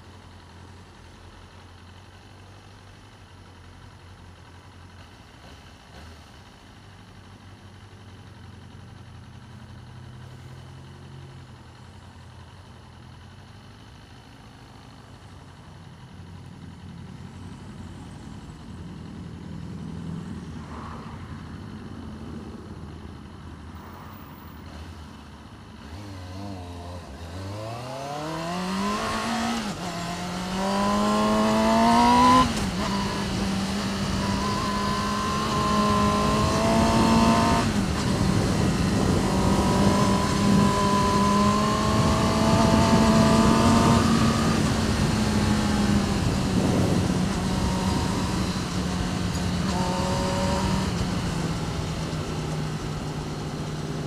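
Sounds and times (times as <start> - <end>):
motorcycle engine: 0.0 - 54.0
wind noise on microphone: 33.7 - 51.8.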